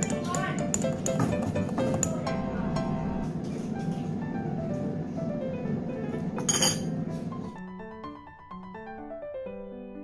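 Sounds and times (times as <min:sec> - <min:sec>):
background music: 0:00.0 - 0:10.0
piano notes: 0:00.0 - 0:10.0
metal spoon clinking on dish: 0:06.4 - 0:06.9.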